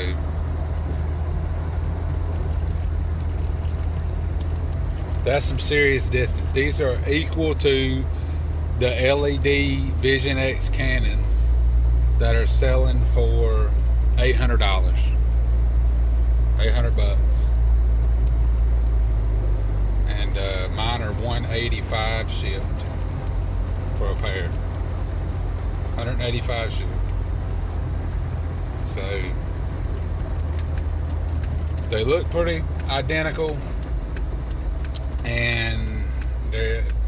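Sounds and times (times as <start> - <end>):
car engine running: 0.0 - 37.0.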